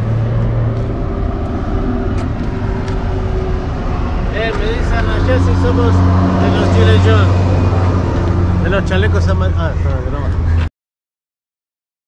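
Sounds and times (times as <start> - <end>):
engine running steadily: 0.0 - 10.7
people talking: 4.3 - 7.4, 8.6 - 10.7.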